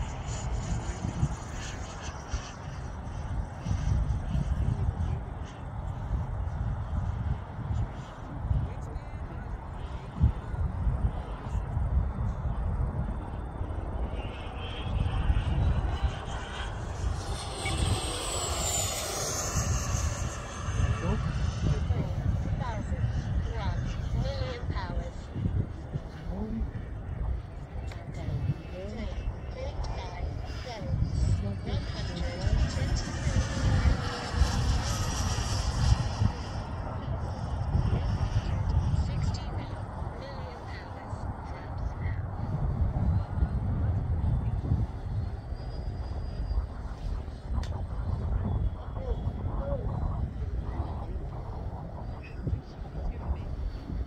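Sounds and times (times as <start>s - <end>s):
model jet flying past: 0.0s - 54.0s
wind buffeting microphone: 0.0s - 54.0s.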